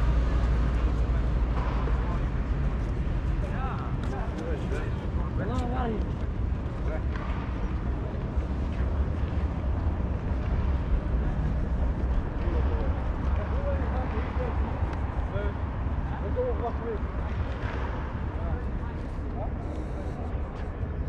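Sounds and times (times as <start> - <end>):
faint voices of passers-by: 0.0 - 21.0
steady low street rumble: 0.0 - 21.0.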